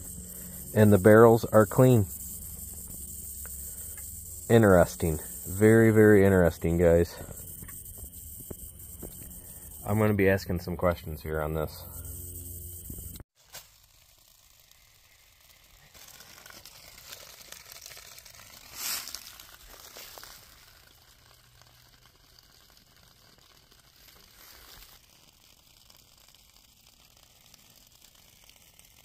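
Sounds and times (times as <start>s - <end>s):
faint crackling rustle: 13.0s - 29.0s.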